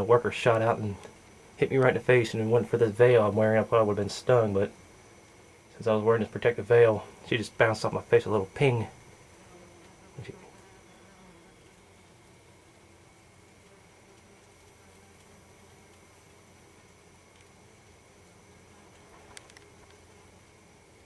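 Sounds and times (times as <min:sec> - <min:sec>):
wasps buzzing: 0:00.0 - 0:21.0.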